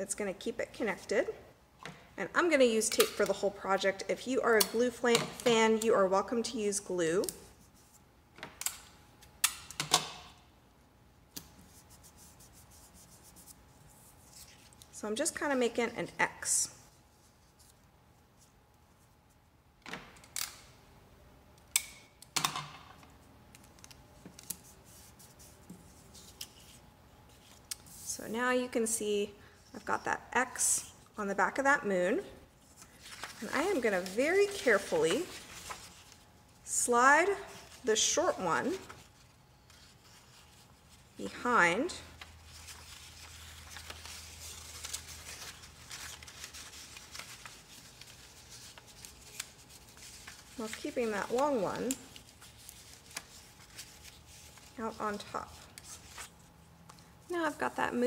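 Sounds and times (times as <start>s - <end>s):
paper rustling: 32.6s - 36.2s, 42.2s - 57.2s.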